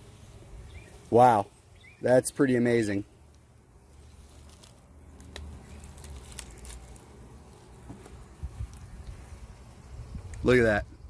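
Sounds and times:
honeybees humming: 0.0 - 10.3
light clicks and rustles: 3.3 - 9.4.

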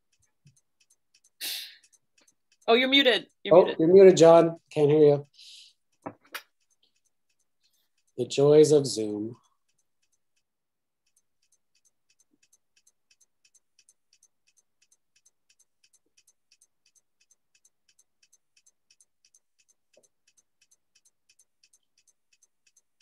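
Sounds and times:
faint steady clicking: 0.0 - 23.0.

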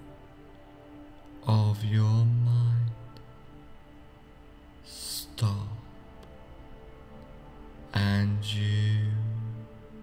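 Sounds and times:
soft music drone: 0.0 - 10.0
man's deep chanting voice: 1.4 - 3.6, 4.8 - 6.1, 7.8 - 10.0.

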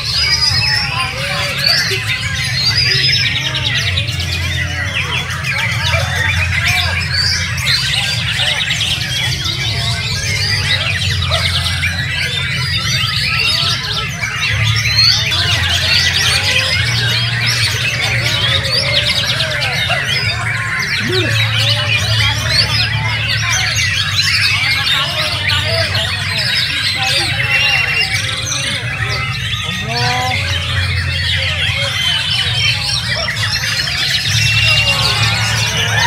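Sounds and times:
caged birds singing in chorus: 0.0 - 36.0.

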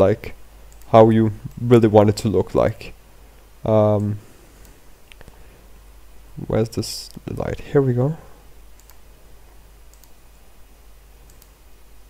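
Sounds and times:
low electrical hum: 0.0 - 12.0
computer mouse clicks: 0.7 - 1.7, 8.7 - 9.1, 9.9 - 10.2, 11.2 - 11.6.

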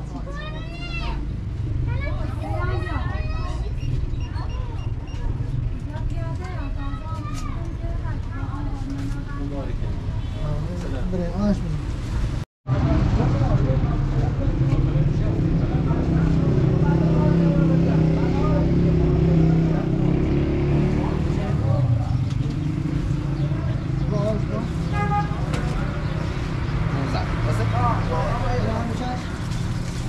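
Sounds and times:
murmur of voices: 12.7 - 29.4.

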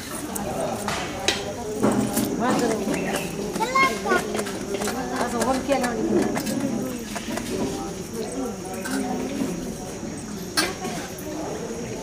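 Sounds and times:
children's voices: 0.0 - 7.0
crowd chattering: 0.0 - 12.0.

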